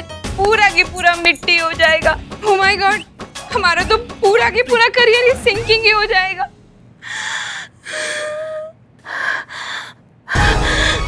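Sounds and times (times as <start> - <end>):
woman gasping for breath: 7.0 - 11.0.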